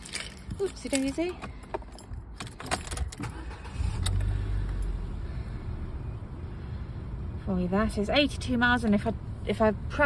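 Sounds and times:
car engine starting and idling: 0.0s - 10.0s.

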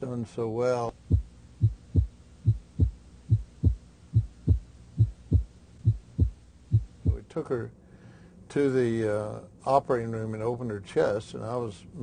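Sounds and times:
heartbeat: 0.9s - 7.2s.

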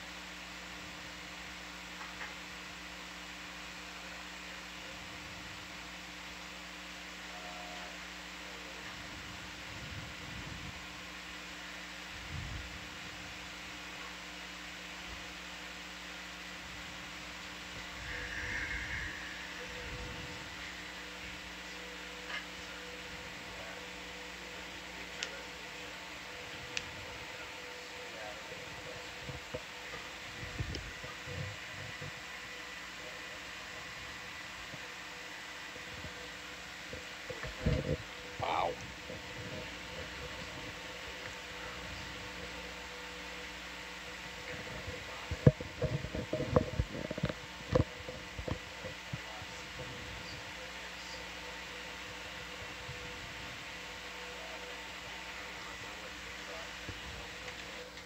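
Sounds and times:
electronic equipment hum: 0.0s - 58.0s
indistinct murmurs: 6.9s - 10.5s, 16.7s - 58.0s
faint fixed tones: 17.4s - 38.3s.

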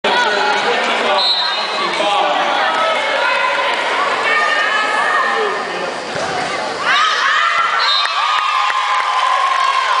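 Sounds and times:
crowd cheering: 6.8s - 10.0s.

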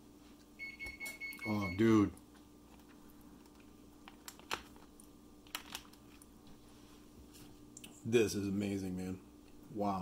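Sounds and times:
plastic crinkling: 2.8s - 6.3s.

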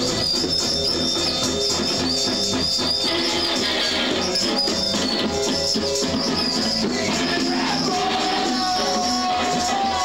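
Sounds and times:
live band with electric guitar: 0.0s - 10.0s.

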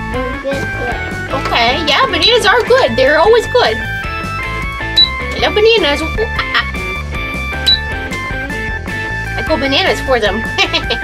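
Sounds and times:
light background music: 0.0s - 11.0s
toy scanner beep: 4.7s - 5.9s, 7.6s - 8.0s.

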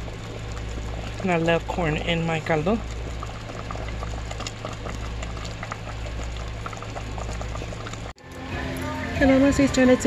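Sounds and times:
soup bubbling in a pot: 0.0s - 8.2s
steady low hum: 0.0s - 10.0s.

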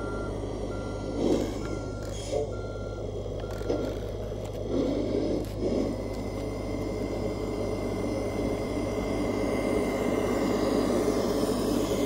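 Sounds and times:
toy truck engine with high whine: 0.0s - 12.0s.

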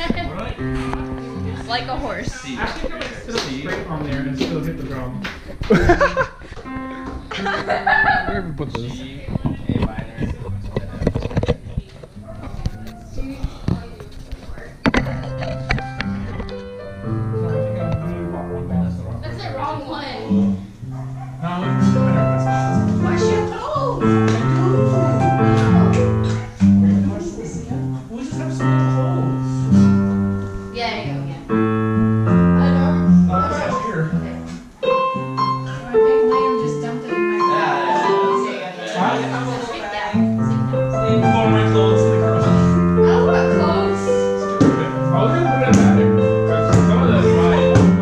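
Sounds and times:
digital keyboard playing chords: 0.0s - 5.2s, 5.8s - 9.2s, 15.0s - 48.0s
acoustic guitar: 0.0s - 48.0s.

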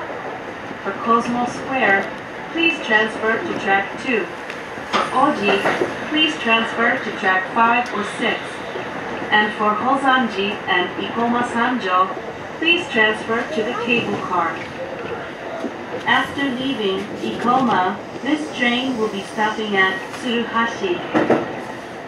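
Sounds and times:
train announcement voice: 0.0s - 21.8s.

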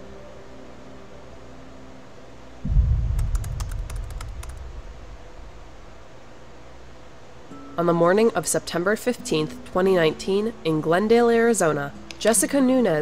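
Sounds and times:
deep rumbling boom: 2.6s - 6.2s.

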